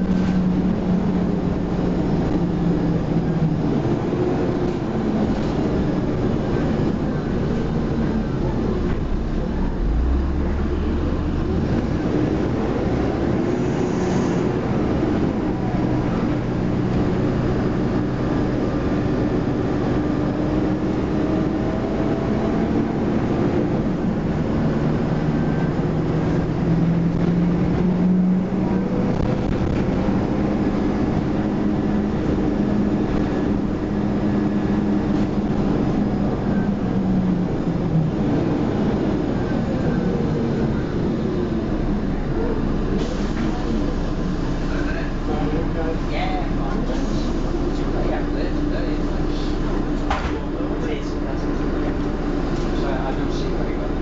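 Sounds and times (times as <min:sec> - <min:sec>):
bus diesel engine: 0:00.0 - 0:54.0
road and body noise: 0:00.0 - 0:54.0.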